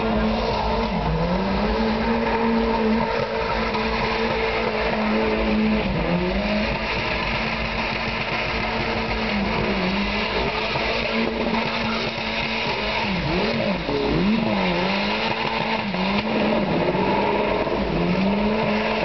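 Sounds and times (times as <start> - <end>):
car engine revving high: 0.0 - 19.0
tyres squealing on pavement: 0.0 - 19.0.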